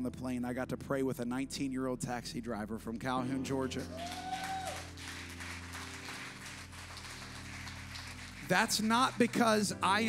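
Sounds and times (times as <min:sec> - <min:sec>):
soft background music chords: 0:00.0 - 0:10.0
scattered applause: 0:03.8 - 0:09.6.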